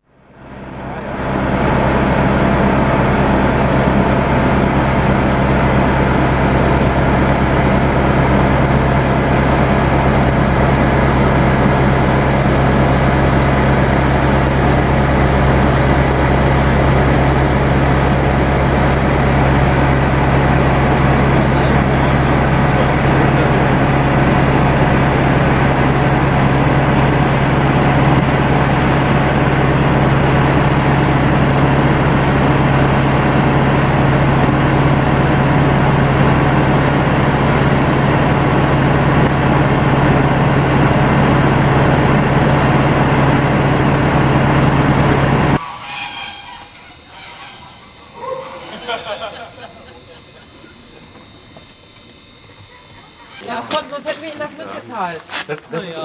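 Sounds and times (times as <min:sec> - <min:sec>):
light aircraft engine drone: 0:00.0 - 0:56.0.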